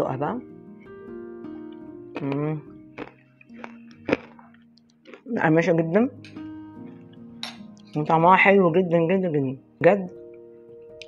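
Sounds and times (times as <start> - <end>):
soft background music: 0.0 - 11.0
granola crunching while chewed: 2.1 - 5.4.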